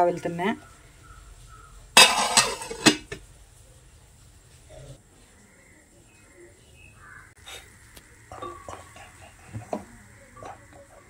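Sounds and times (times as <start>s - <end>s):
metal lid clanging on pot: 2.0s - 3.2s.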